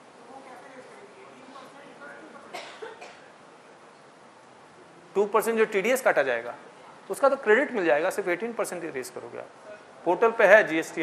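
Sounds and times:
faint background murmur: 0.0s - 5.4s, 9.0s - 11.0s
person coughing: 2.5s - 3.3s.

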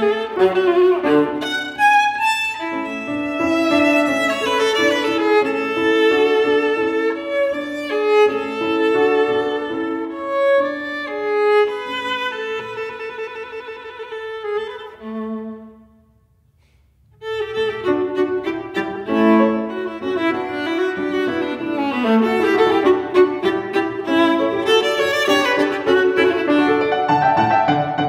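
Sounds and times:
solo viola playing: 0.0s - 16.0s, 17.2s - 27.6s.

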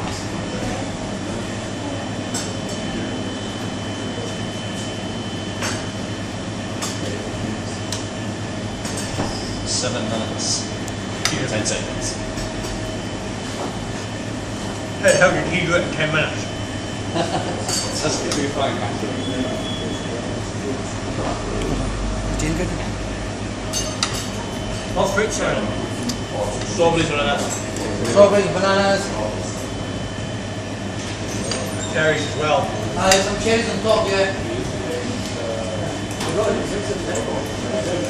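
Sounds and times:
room rumble and hum: 0.0s - 38.0s.

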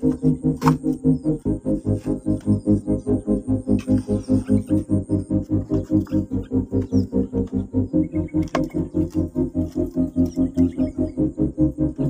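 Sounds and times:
bird pulsed calls: 0.0s - 12.0s.

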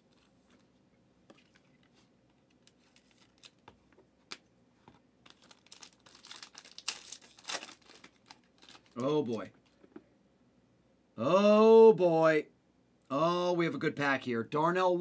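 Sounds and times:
foil wrapper crinkling and tearing: 2.6s - 3.6s, 5.2s - 9.5s.

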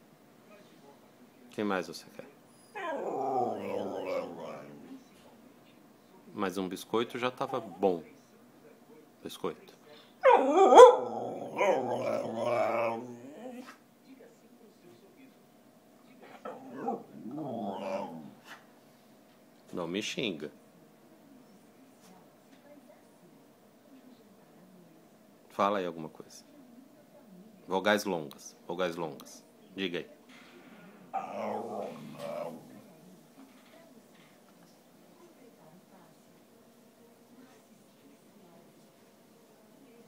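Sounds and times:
dog howl-like vocalization: 2.7s - 4.8s, 10.2s - 13.7s, 16.5s - 18.3s, 31.1s - 32.7s
dog grumbling: 2.7s - 5.0s, 10.2s - 13.8s, 16.2s - 18.5s, 31.1s - 32.9s.

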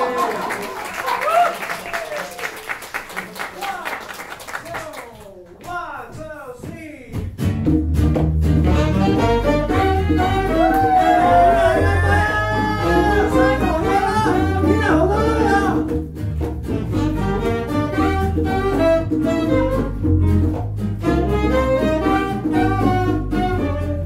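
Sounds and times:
guitar: 7.1s - 24.0s
electric bass: 7.4s - 24.0s
saxophones: 8.7s - 15.9s, 16.7s - 24.0s.

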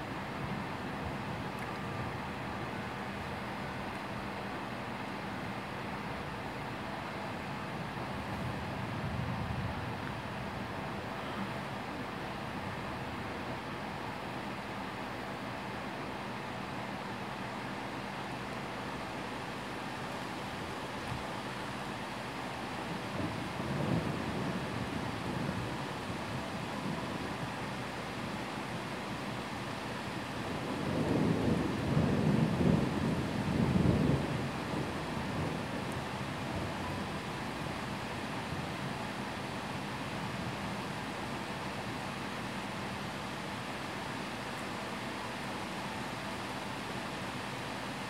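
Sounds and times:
steady rain: 0.0s - 48.0s
thunder rolling: 30.7s - 36.0s.

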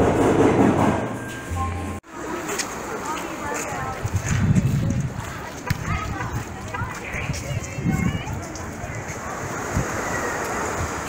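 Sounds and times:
distant people talking: 1.5s - 11.0s.

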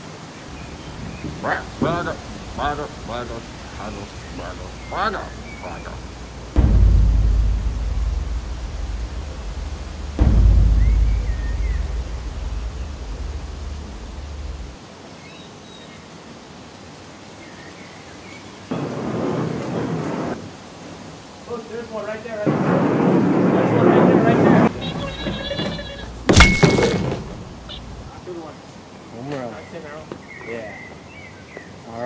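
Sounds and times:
voices: 0.6s - 6.6s, 21.4s - 31.1s
burst of noise: 0.6s - 14.8s, 18.7s - 20.8s, 22.2s - 28.2s
thunder claps with deep rumble: 6.6s - 14.8s, 22.4s - 25.9s.

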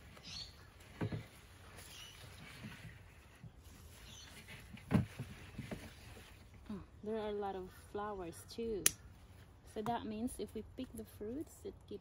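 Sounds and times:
leaves and stems rustling: 0.0s - 11.4s.

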